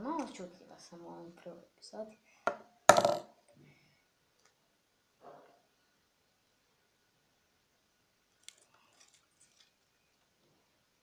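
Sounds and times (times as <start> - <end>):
sharp knocks on tabletop: 2.5 - 3.3.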